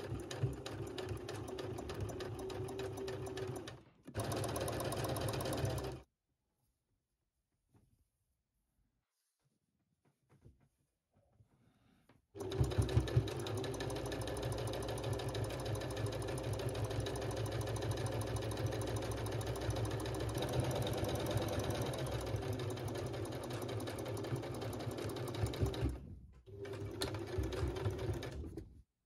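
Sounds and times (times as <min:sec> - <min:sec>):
sewing machine stitching: 0:00.0 - 0:06.0, 0:12.4 - 0:28.8.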